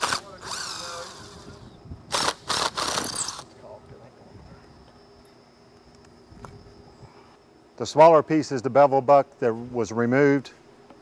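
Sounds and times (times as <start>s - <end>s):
cordless drill whining: 0.0s - 3.5s.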